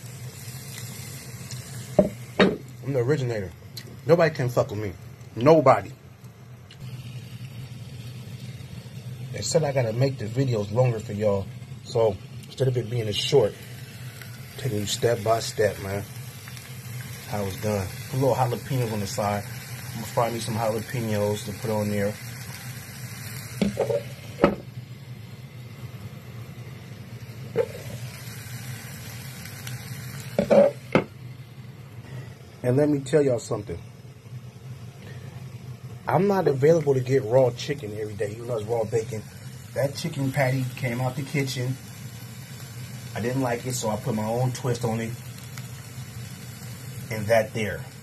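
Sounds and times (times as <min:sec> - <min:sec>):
faint frying sizzle: 0:00.0 - 0:48.0
low steady hum: 0:00.0 - 0:48.0.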